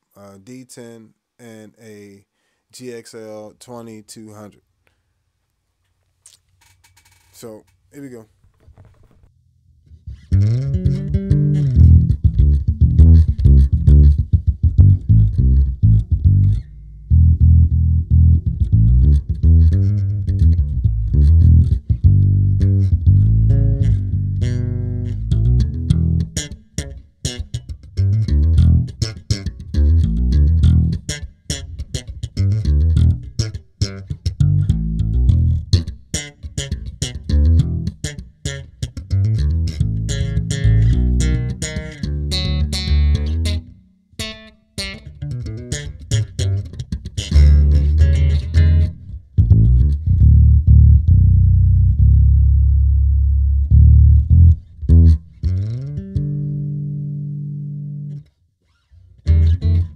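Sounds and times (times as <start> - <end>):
electric bass guitar plucked notes: 9.9 - 58.3, 59.2 - 59.9.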